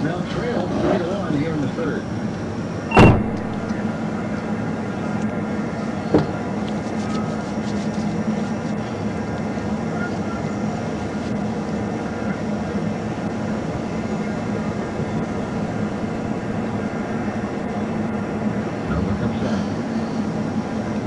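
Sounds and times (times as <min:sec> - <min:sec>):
vehicle engine idling: 0:01.3 - 0:21.0.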